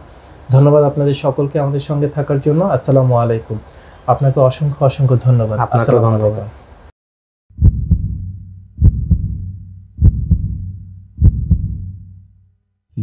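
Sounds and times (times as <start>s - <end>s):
heartbeat double beats: 7.5s - 12.3s
low hum: 7.6s - 13.0s.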